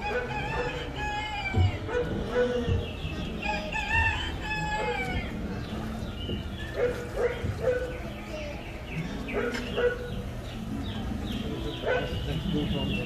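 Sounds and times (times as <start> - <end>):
hens clucking: 0.0 - 13.0.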